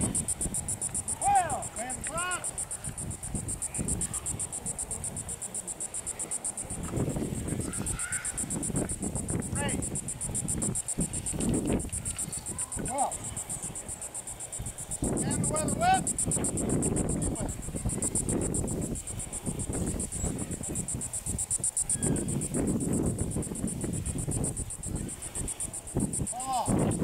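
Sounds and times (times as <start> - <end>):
insects trilling: 0.0 - 27.0.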